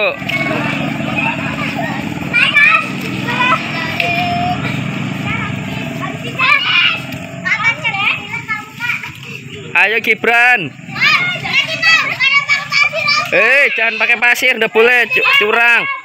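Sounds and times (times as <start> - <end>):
steady low hum: 0.0 - 13.5
children chattering and calling: 0.0 - 16.0.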